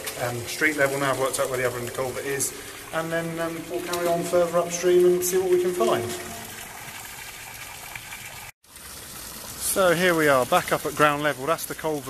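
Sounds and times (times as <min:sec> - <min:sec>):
shallow stream rushing: 0:00.0 - 0:07.5.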